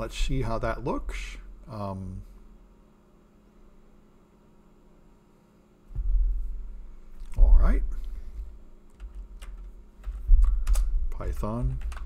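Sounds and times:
dull low thumps: 5.9 - 6.8
computer keyboard keystrokes: 8.9 - 12.0.

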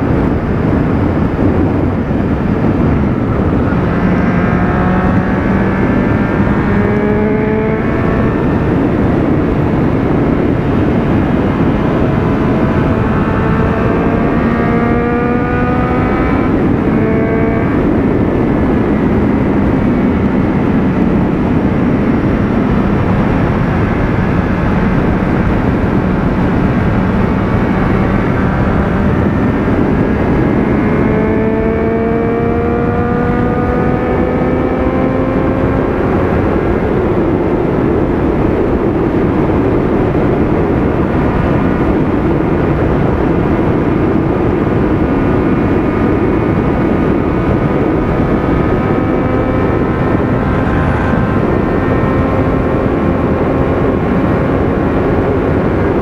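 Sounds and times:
motorcycle engine at speed: 0.0 - 56.0
wind rushing on microphone: 0.0 - 56.0.

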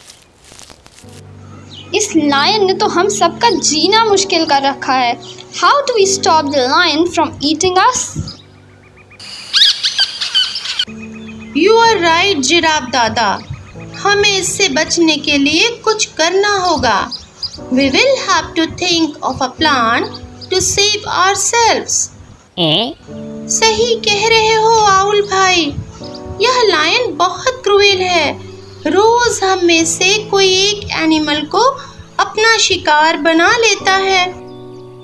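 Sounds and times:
background music: 0.9 - 35.0.

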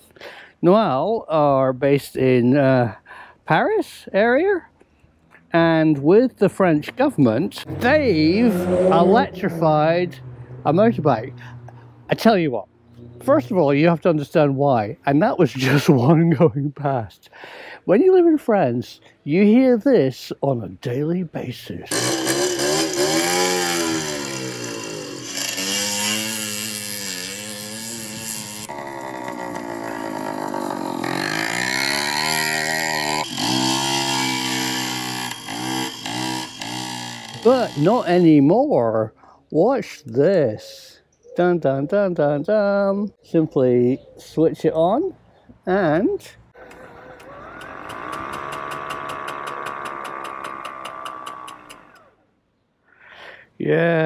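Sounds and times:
small motorbike engines revving: 6.6 - 12.2, 21.9 - 38.5, 46.5 - 52.2.

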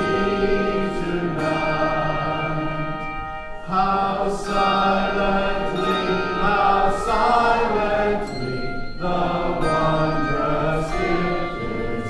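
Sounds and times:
handbell choir ringing: 0.0 - 12.0.

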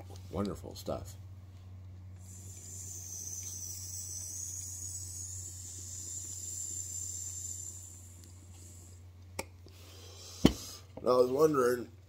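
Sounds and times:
faint low hum: 0.0 - 12.0
high sizzling hiss: 2.2 - 9.0.

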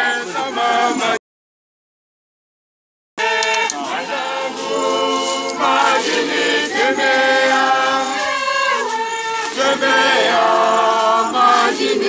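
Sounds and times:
choir singing unaccompanied: 0.0 - 1.2, 3.2 - 12.0.

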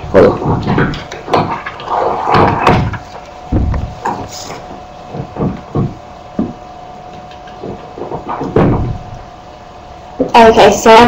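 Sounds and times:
steady hum: 0.0 - 11.0
microphone handling thumps: 2.3 - 9.2.

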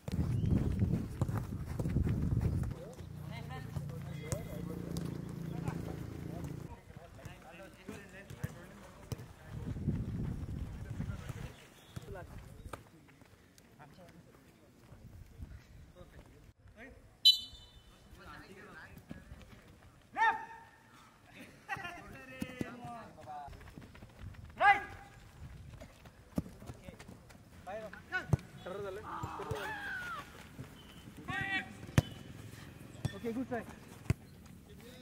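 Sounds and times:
people shouting short calls: 20.1 - 20.9, 24.6 - 25.2, 28.2 - 30.4, 31.2 - 32.3
football being kicked: 31.3 - 32.2.

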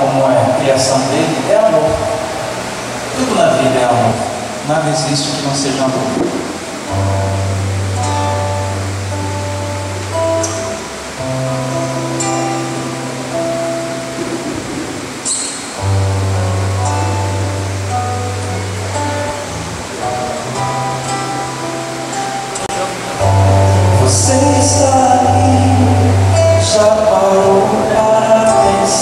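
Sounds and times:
acoustic guitar chords: 0.0 - 29.0
held bass notes: 0.0 - 29.0.

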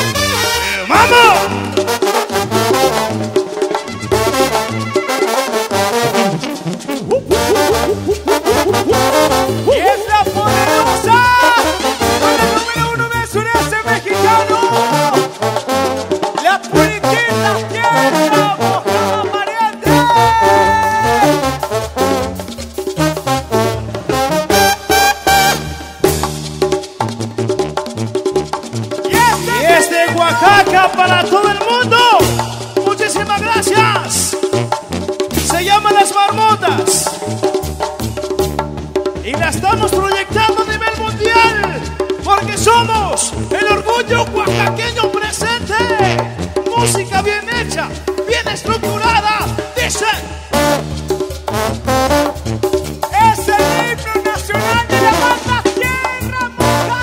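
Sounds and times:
bass line: 0.0 - 57.0
brass band playing: 0.0 - 57.0
percussion strokes: 0.0 - 57.0.

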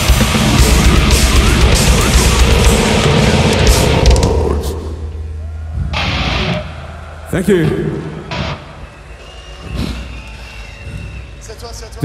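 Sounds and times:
crowd noise burst: 0.0 - 11.6
crowd and stage rumble: 0.0 - 11.8.

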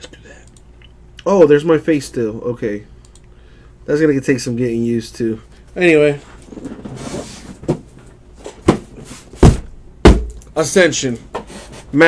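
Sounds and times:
knocks on cardboard box: 8.6 - 10.4.

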